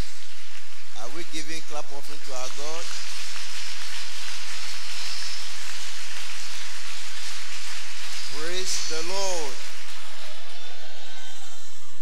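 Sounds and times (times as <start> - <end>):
crowd applause: 0.0 - 12.0
man talking: 0.9 - 3.0, 8.3 - 9.6.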